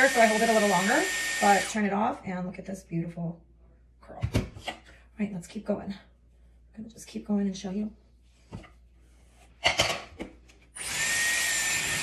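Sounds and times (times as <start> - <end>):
hair styler blowing air: 0.0 - 1.8, 10.8 - 12.0.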